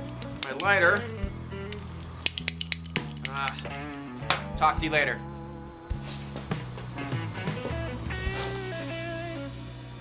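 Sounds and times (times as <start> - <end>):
soft background music: 0.0 - 10.0
lighter clicking: 0.1 - 3.8.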